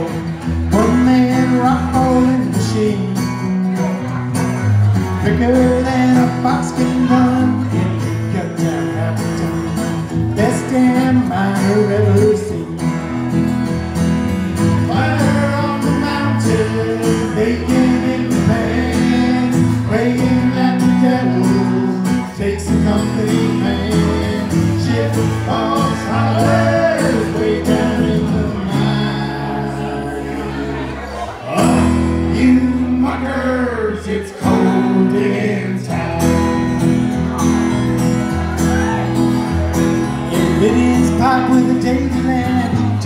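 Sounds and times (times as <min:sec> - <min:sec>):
electric bass: 0:00.0 - 0:43.0
strummed acoustic guitar: 0:00.0 - 0:43.0.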